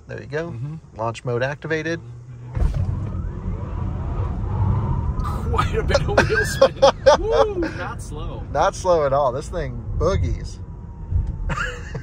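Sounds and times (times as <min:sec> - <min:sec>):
tyre and road rumble: 0:02.1 - 0:12.0.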